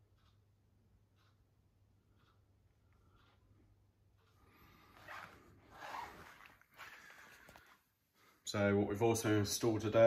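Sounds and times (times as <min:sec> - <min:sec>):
soft breathing: 0:02.2 - 0:08.5.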